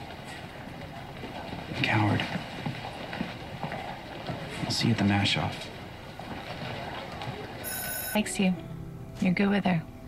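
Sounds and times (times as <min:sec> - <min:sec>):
even background noise: 0:00.0 - 0:10.0.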